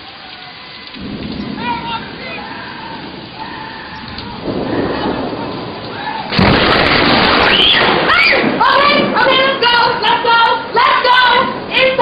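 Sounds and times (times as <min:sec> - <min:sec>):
heavy rain falling: 0:00.0 - 0:12.0
thunder rumbling: 0:00.0 - 0:12.0.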